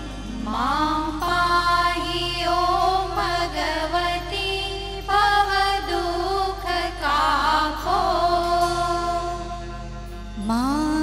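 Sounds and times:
women singing in unison: 0.2 - 9.8.

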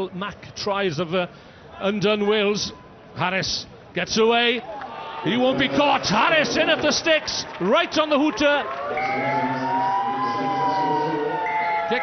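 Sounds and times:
stadium hooter: 8.6 - 12.0.

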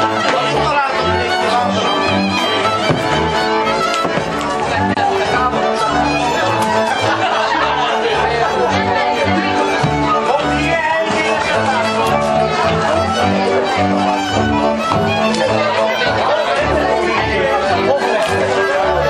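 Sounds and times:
folk string band playing: 0.0 - 19.0
people chattering: 0.0 - 19.0.

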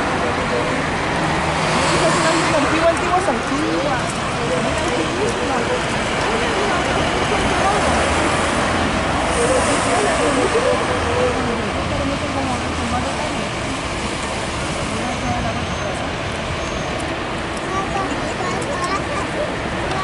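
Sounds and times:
background voices: 0.0 - 20.0
vehicles passing: 0.0 - 20.0.

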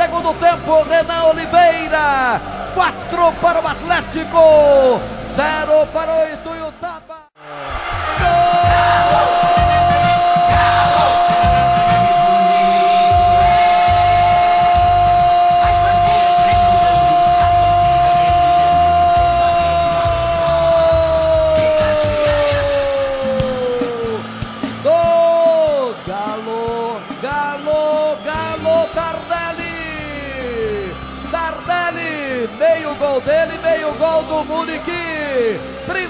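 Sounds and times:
radio narrator's long goal cry: 7.6 - 24.2.

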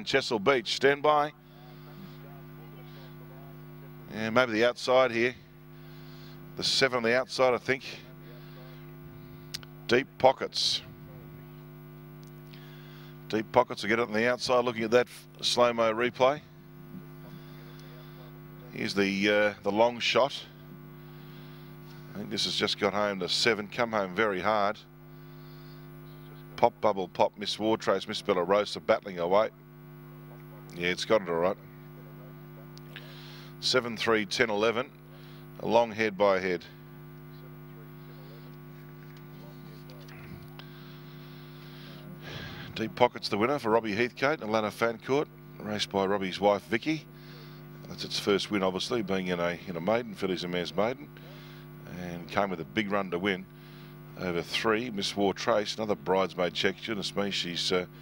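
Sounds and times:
electrical mains hum: 0.0 - 58.0
faint background voices: 1.4 - 4.1.

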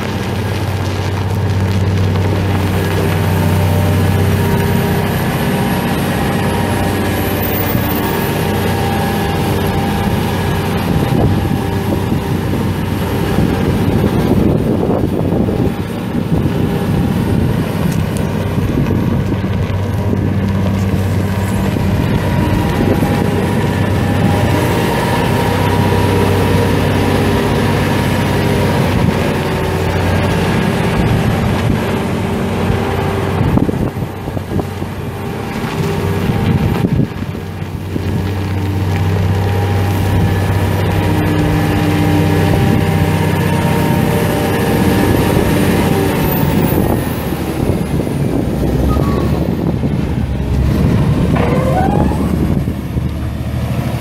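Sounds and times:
diesel engine revving: 0.0 - 54.0.

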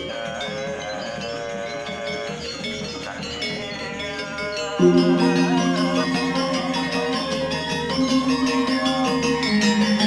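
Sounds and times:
gamelan metallophones ringing: 4.6 - 9.3
low cycling melody: 4.8 - 8.5.

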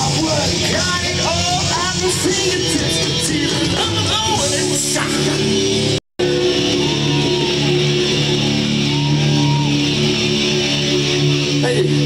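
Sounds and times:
rock band with distorted guitars: 0.0 - 12.0.

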